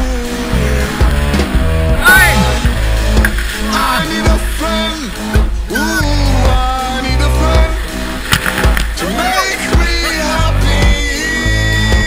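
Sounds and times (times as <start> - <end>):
background music with heavy bass: 0.0 - 12.0.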